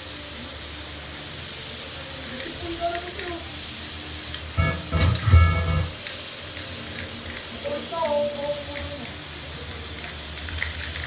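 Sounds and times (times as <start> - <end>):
spray paint can hissing: 0.0 - 11.0
deep bass-heavy music: 4.6 - 6.0.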